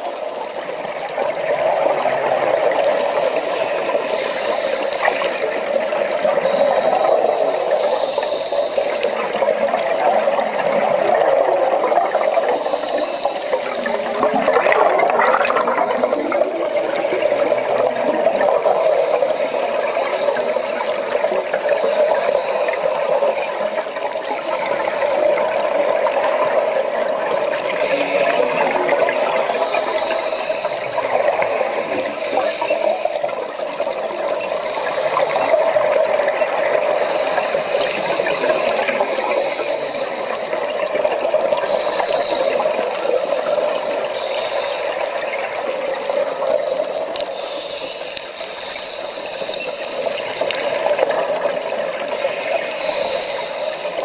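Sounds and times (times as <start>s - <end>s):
muffled underwater rushing: 0.0s - 54.0s.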